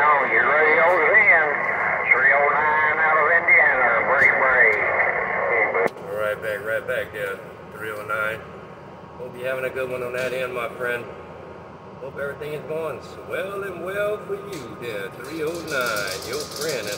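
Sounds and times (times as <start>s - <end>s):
voices over radio: 0.0s - 7.2s
radio transmission click: 0.3s - 6.0s.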